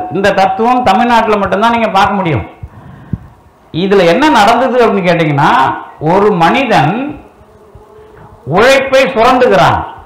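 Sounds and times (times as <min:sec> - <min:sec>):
man speaking through a microphone: 0:00.0 - 0:02.6, 0:03.7 - 0:07.3, 0:08.4 - 0:10.0.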